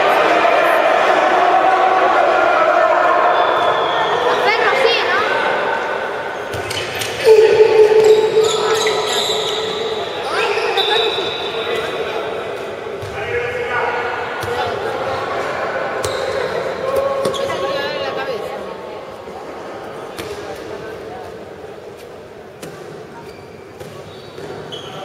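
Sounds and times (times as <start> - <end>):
ball bouncing on court: 6.5 - 9.8, 13.0 - 13.2
people shouting: 7.2 - 11.0.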